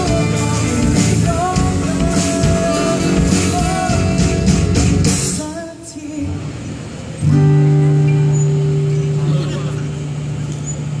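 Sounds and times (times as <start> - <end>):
voices: 8.6 - 11.0.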